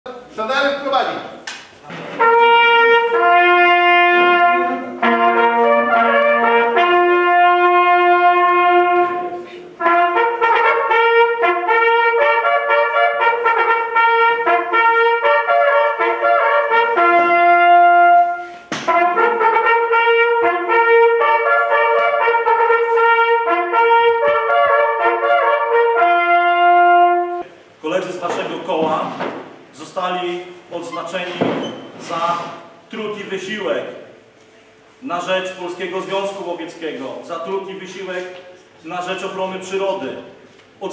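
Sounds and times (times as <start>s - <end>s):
brass hunting horns playing: 2.2s - 27.6s.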